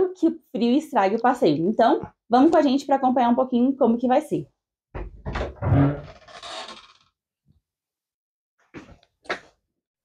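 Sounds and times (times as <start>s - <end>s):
door rubbing and scraping: 5.0s - 7.0s
door groan: 5.3s - 7.0s.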